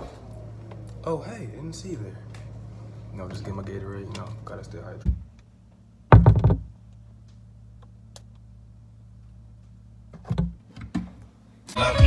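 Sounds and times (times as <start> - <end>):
steady low hum: 0.0 - 12.0
dull knocks and thumps: 6.1 - 6.8.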